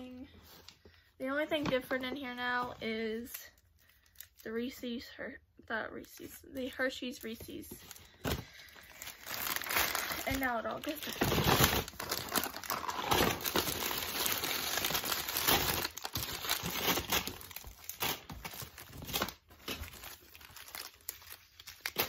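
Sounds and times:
bag and wrappers crinkling: 6.0s - 22.0s.

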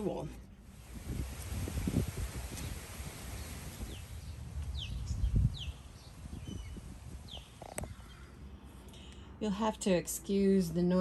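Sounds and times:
birds chirping: 1.9s - 9.3s.

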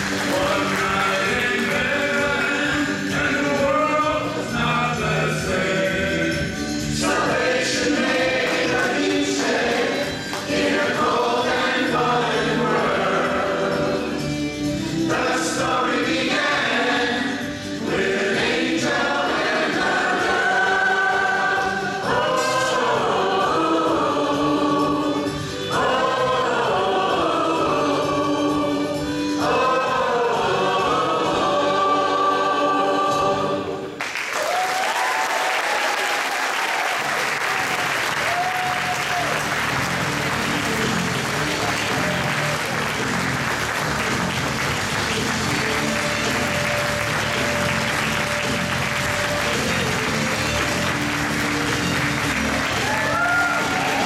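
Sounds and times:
audience applause: 0.0s - 2.8s, 34.0s - 54.0s
choir singing held chords: 0.0s - 34.0s, 38.8s - 54.0s.

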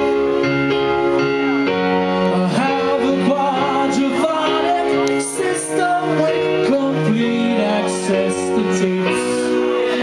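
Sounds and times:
rock band playing chords: 0.0s - 10.0s
person singing: 2.1s - 10.0s.

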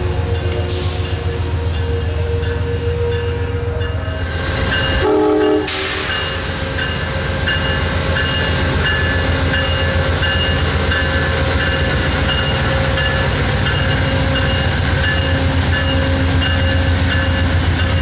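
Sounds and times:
train wheels on rails: 0.0s - 18.0s
train horn: 5.0s - 6.1s.

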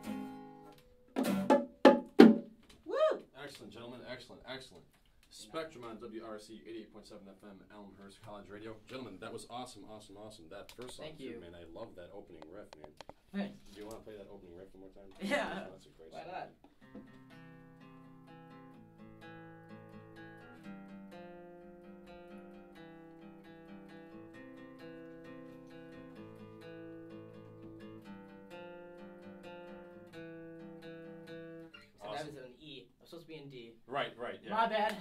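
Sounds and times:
acoustic guitars playing a riff: 0.0s - 2.6s, 16.8s - 32.4s.

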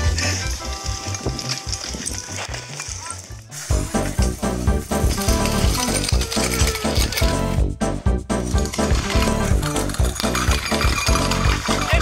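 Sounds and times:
jingling percussion: 0.0s - 7.7s, 8.3s - 12.0s
background music with fast beat: 2.9s - 12.0s.

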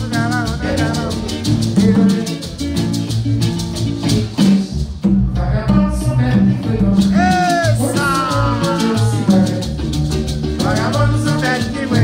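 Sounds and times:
person singing: 0.0s - 3.0s, 5.4s - 9.9s, 10.6s - 12.0s
maracas shaking: 0.0s - 5.1s, 6.6s - 12.0s
acoustic guitar: 0.0s - 12.0s
hand drum: 0.0s - 12.0s
low bass notes: 0.0s - 12.0s.

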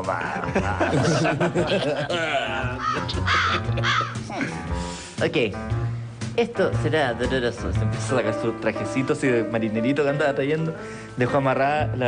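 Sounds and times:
background music: 0.0s - 12.0s
man making squawking noises: 2.1s - 4.7s.

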